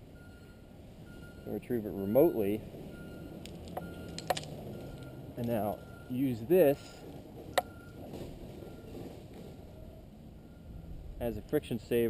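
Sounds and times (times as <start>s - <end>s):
climbing hardware clicking: 3.4s - 5.8s.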